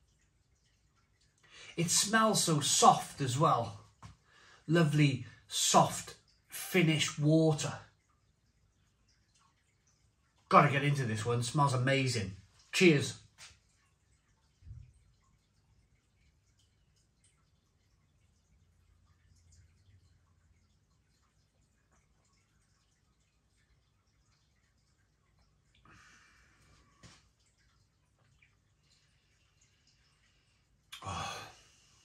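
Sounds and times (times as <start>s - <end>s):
faint swallow: 30.9s - 31.8s.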